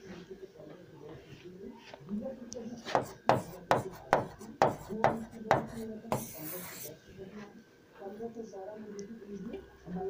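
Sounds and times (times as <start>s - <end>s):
pen tapping on hard board: 3.0s - 6.8s.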